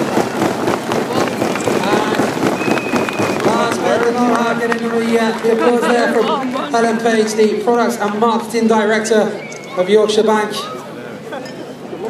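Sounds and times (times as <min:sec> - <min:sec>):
crowd applause: 0:00.0 - 0:12.0
voices: 0:00.0 - 0:12.0.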